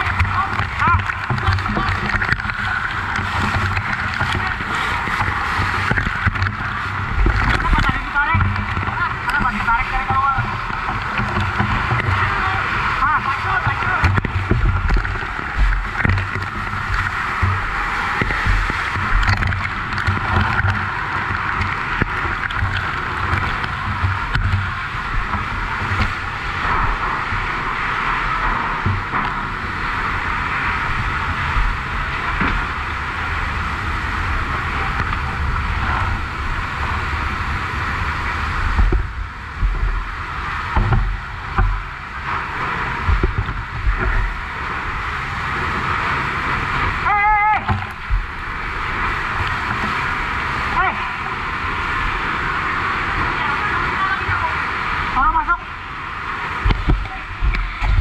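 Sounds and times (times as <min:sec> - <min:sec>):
low rumbling: 0:00.0 - 0:58.0.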